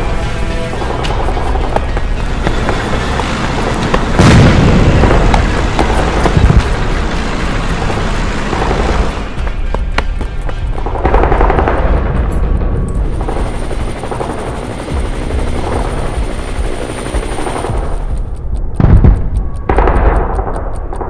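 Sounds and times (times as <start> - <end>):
helicopters: 0.0 - 18.9
machine-gun fire: 2.4 - 9.4
loud low impact: 3.9 - 7.6.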